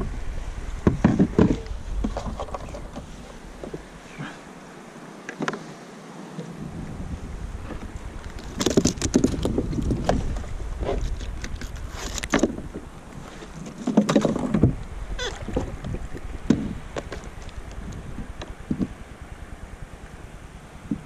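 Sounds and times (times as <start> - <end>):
wind on microphone: 0.0 - 4.4, 6.4 - 21.0
gear clattering on plastic kayak: 0.8 - 3.9, 7.6 - 19.0.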